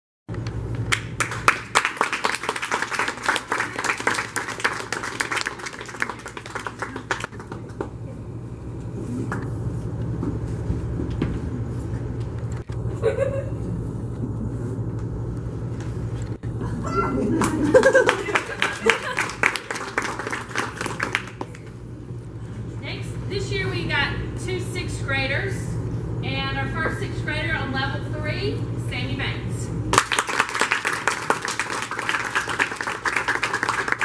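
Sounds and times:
low hum in hall: 0.3s - 34.0s
audience applauding: 0.9s - 7.9s, 17.3s - 21.7s, 29.9s - 34.0s.

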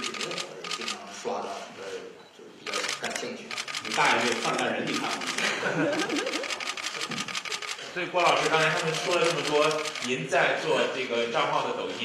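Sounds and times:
faint voices: 0.0s - 12.0s
camera shutters clicking: 2.7s - 10.1s.

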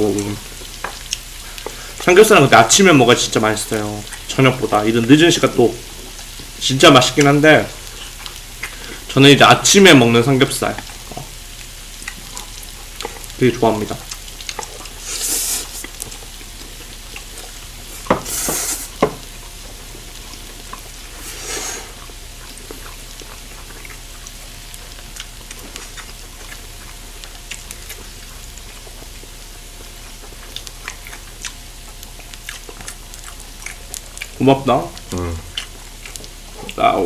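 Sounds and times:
meat sizzling on a grill plate: 0.0s - 37.0s
chewing clicks: 22.0s - 36.8s.

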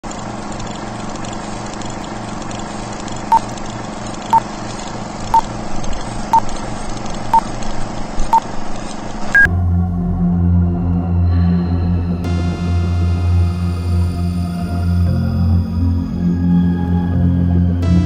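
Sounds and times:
low drone: 9.3s - 18.0s.

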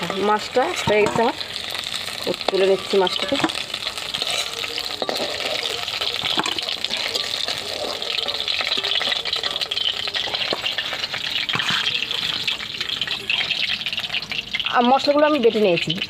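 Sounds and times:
metal spatula scraping pan: 0.0s - 15.8s
hot oil sizzling: 0.0s - 16.0s.

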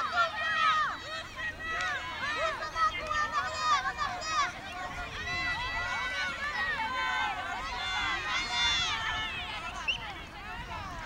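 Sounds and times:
children shouting and cheering: 0.0s - 11.0s.

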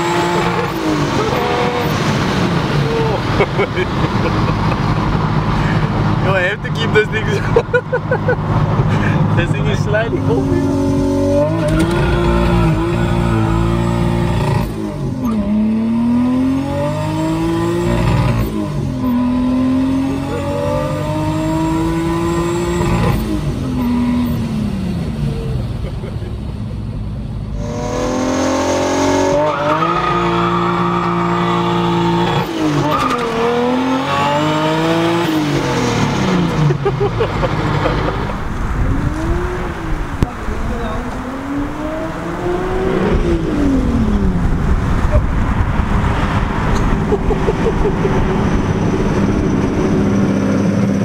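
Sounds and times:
car engine accelerating through gears: 0.0s - 26.2s, 26.9s - 51.0s.

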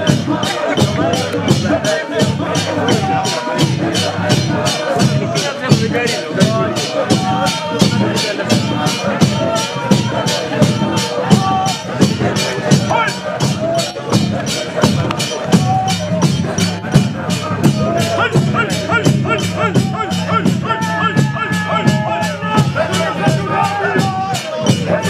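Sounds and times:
congregation singing: 0.0s - 25.0s
drums: 0.0s - 25.0s
jingling hand percussion: 0.0s - 25.0s.

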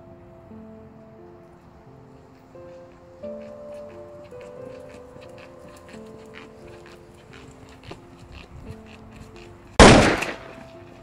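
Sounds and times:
soft music of held notes: 0.0s - 11.0s
loud gunshot with echo: 9.8s - 10.7s.

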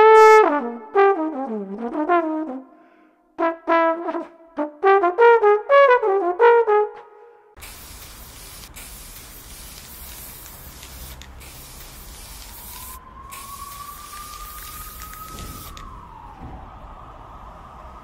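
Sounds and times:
aerosol spray can hissing: 7.6s - 15.8s
faint rising tone: 12.4s - 18.0s.

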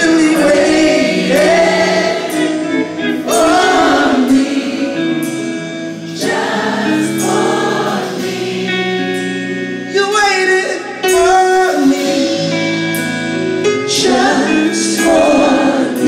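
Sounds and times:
band playing: 0.0s - 16.0s
choir singing gospel: 0.0s - 16.0s.

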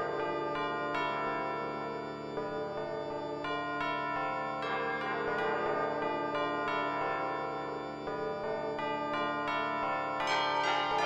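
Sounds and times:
bells ringing: 3.4s - 11.0s.

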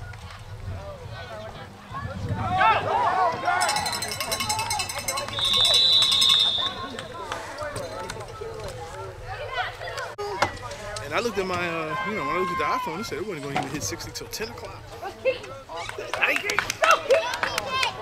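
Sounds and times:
spectators shouting: 1.2s - 8.2s, 11.6s - 13.2s
referee whistle blast: 5.3s - 7.0s.

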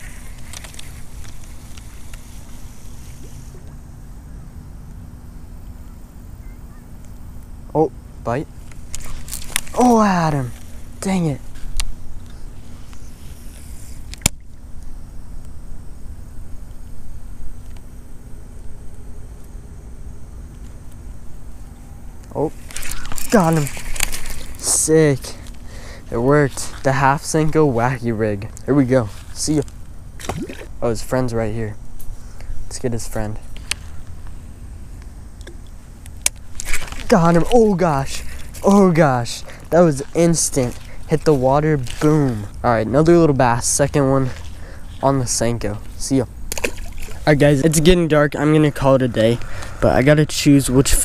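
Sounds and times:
steady low rumble: 0.0s - 51.0s
sharp click: 14.1s - 14.5s.

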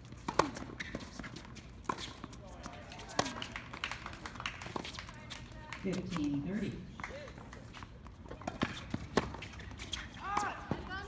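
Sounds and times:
tennis ball bouncing on hard court: 0.2s - 11.0s.

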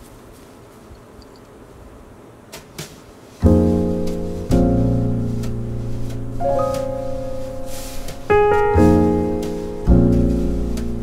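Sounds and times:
faint background hiss: 0.0s - 11.0s
brush stroking paper: 2.9s - 11.0s.

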